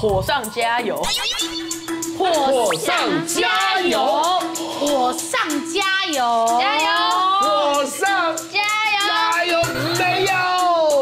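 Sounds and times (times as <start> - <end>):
background music with steady beat: 0.0 - 11.0
children chanting sing-song: 2.5 - 10.2.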